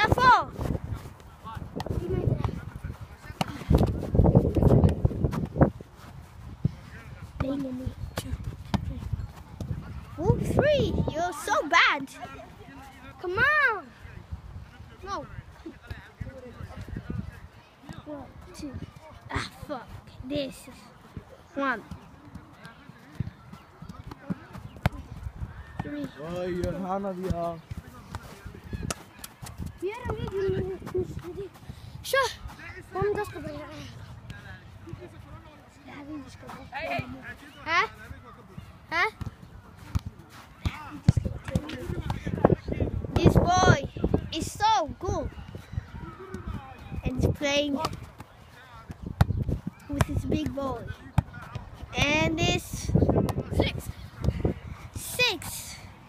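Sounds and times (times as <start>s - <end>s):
wind on microphone: 0.0s - 11.2s, 41.1s - 47.4s
football being kicked: 39.1s - 42.3s.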